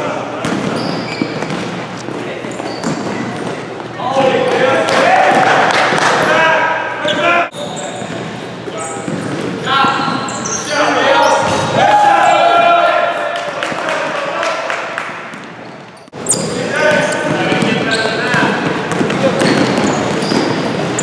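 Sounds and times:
players shouting: 4.0 - 7.5, 9.6 - 14.9
basketball bouncing on hardwood: 17.2 - 20.9.

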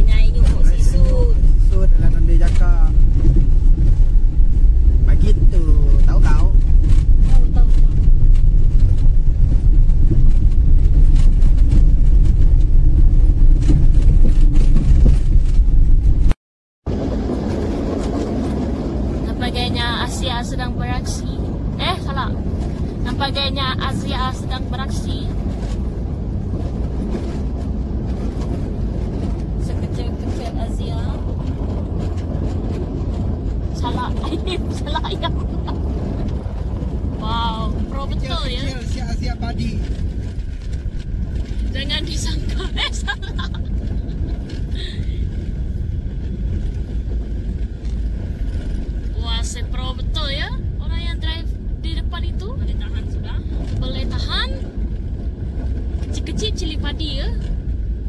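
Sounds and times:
car engine and road rumble: 0.0 - 58.0
car on dirt road: 0.0 - 58.0.

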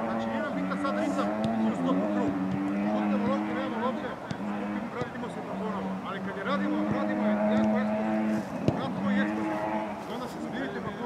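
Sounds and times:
players' voices: 0.0 - 11.0
football kicked thud: 8.6 - 8.8.

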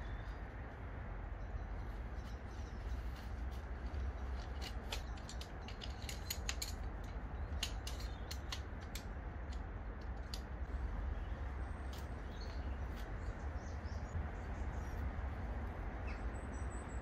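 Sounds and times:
steady low rumble: 0.0 - 17.0
tent poles clicking and rattling: 1.7 - 10.7.

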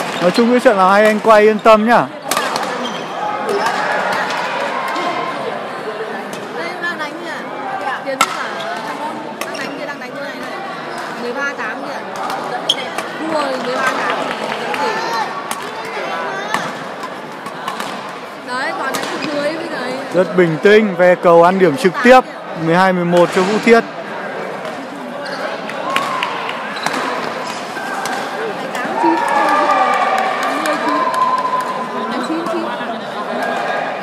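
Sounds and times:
many voices chattering: 0.0 - 34.0.

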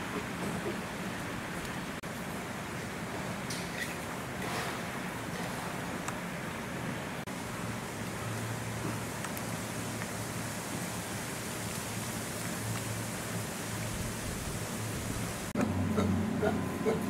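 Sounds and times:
outdoor background hiss: 0.0 - 17.0.

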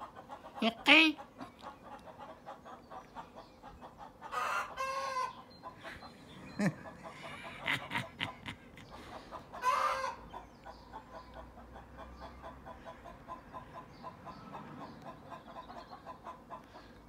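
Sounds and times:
chickens squawking: 0.0 - 17.0.

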